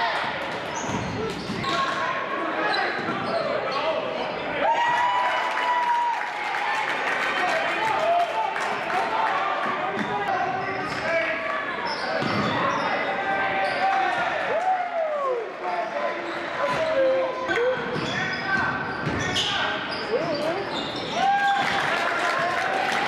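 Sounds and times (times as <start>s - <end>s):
sneakers squeaking: 0.7s - 2.0s, 2.6s - 4.0s, 11.8s - 14.0s, 16.2s - 21.8s.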